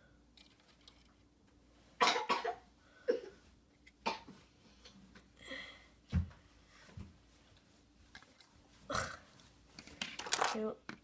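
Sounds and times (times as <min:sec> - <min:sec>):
person coughing: 0:02.0 - 0:03.4.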